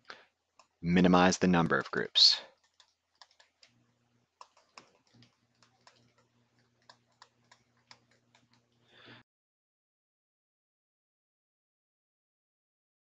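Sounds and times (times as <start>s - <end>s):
stylus tapping on tablet screen: 2.6s - 3.8s, 4.4s - 8.7s.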